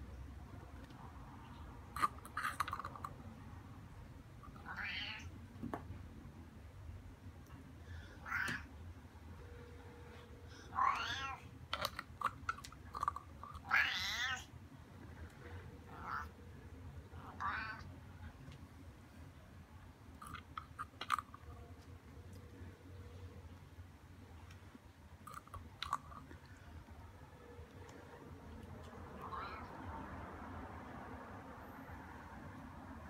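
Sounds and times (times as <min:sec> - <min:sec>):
cat meowing: 0:04.6 - 0:05.3, 0:08.2 - 0:08.7, 0:10.7 - 0:11.5, 0:13.6 - 0:14.5, 0:15.8 - 0:16.4, 0:17.1 - 0:17.9, 0:29.2 - 0:29.8.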